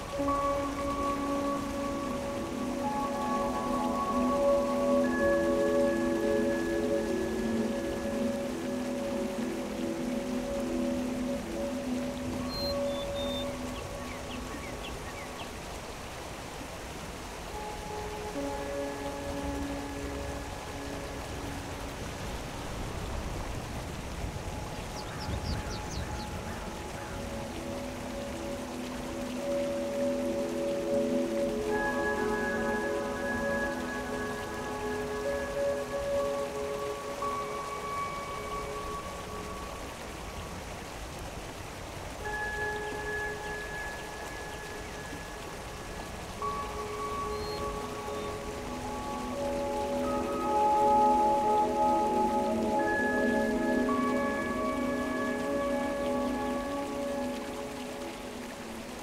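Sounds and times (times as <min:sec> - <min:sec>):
mountain stream flowing: 0:00.0 - 0:59.0.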